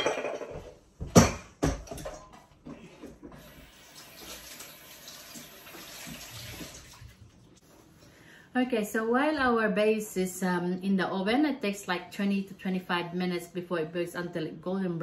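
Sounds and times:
metal bowl and utensils clattering: 0.0s - 2.5s.

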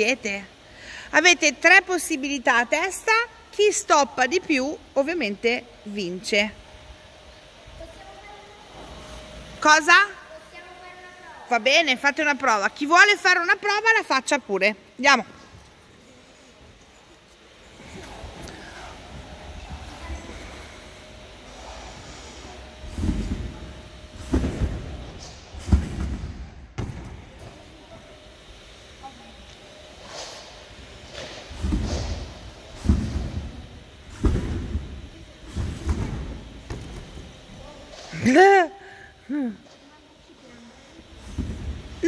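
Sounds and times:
trampoline bouncing thuds: 22.8s - 27.7s, 30.9s - 37.6s, 41.2s - 42.0s.

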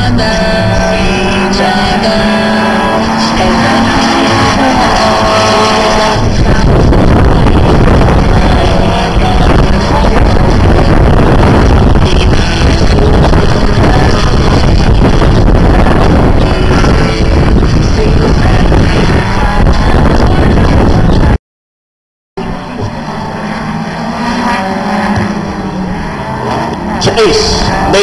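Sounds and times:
pop music over loudspeakers: 0.0s - 21.4s
racing car engines droning: 0.0s - 21.4s, 22.4s - 28.0s
wind on microphone: 0.0s - 21.4s, 22.4s - 28.0s.

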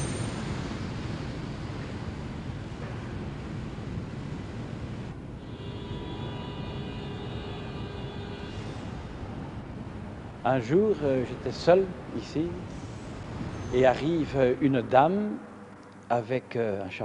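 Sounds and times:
metro train rumbling: 0.0s - 15.6s.

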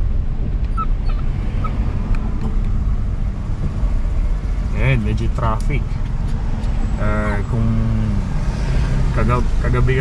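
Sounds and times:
car cabin engine and road rumble: 0.0s - 10.0s.

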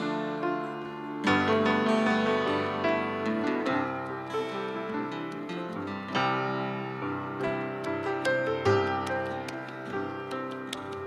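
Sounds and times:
grand piano notes: 0.0s - 11.0s.

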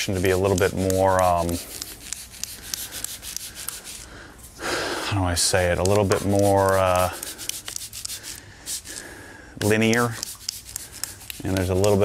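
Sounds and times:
spray bottle spritzing: 0.5s - 4.2s, 5.9s - 9.1s, 9.7s - 12.0s.

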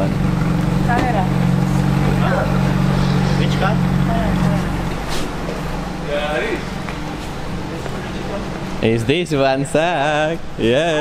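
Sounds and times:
engine idling: 0.0s - 9.0s.

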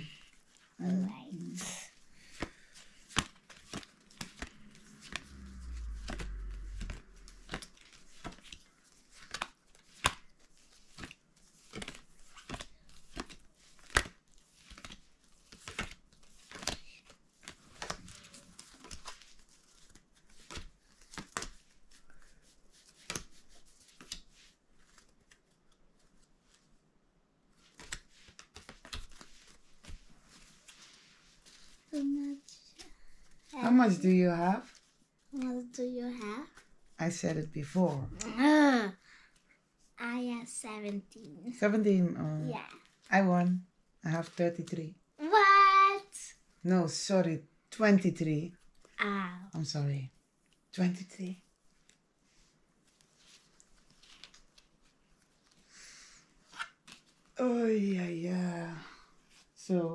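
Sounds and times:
cards tapping: 2.3s - 5.2s
low rumble of handling: 4.6s - 7.9s.

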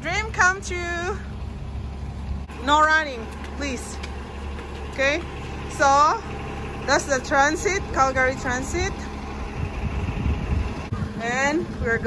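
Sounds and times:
bus engine rumbling: 0.0s - 12.0s.

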